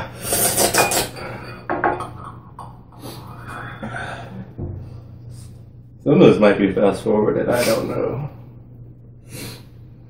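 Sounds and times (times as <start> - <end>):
spoon scraping and clinking in glass jar: 0.2 - 2.4.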